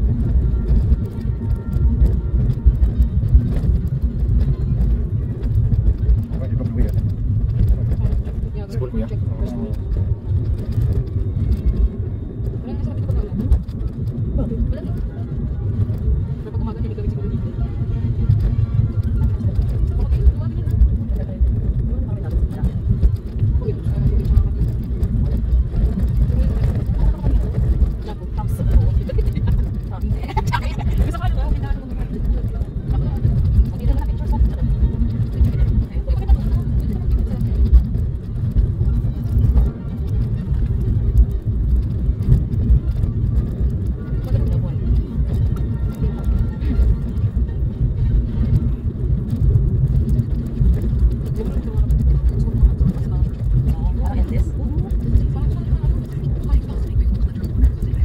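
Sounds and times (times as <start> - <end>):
car road and engine rumble: 0.0 - 58.0.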